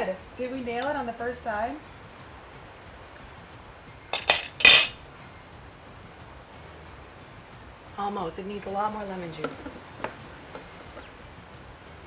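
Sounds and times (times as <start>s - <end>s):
kitchenware clinking: 4.2s - 5.0s.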